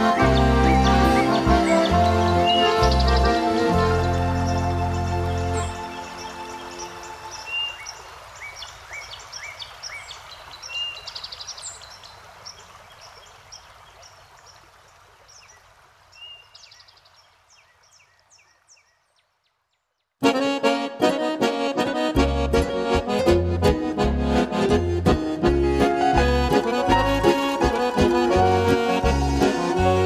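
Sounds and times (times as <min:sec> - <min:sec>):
song's sustained chord: 0:00.0 - 0:07.5, 0:20.3 - 0:30.0
stream-like rushing: 0:00.0 - 0:18.8, 0:22.9 - 0:30.0
birdsong chirps: 0:00.0 - 0:20.2.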